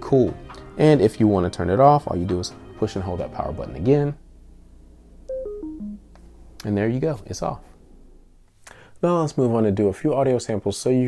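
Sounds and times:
descending electronic chime tones: 5.3s - 6.0s.

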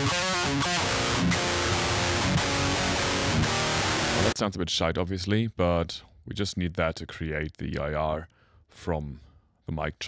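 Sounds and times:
harsh fizzy electric guitar: 0.0s - 4.4s.

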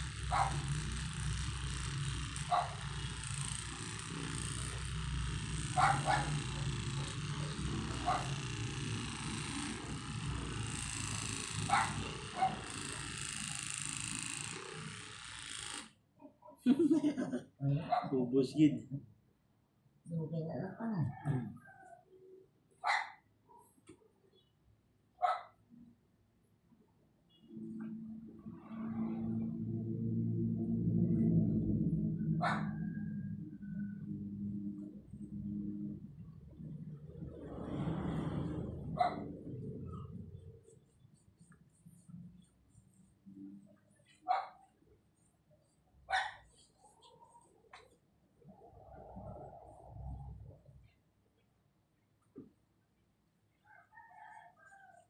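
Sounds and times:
dog barking: 0.3s - 0.6s, 2.5s - 2.8s, 5.8s - 6.4s, 8.0s - 8.3s, 11.7s - 12.6s, 17.8s - 18.2s, 22.8s - 23.7s, 25.2s - 25.6s, 32.4s - 32.8s, 39.0s - 39.3s, 44.2s - 44.7s, 46.1s - 46.5s
long drawn-out dog sound: 32.2s - 33.3s, 37.3s - 42.2s.

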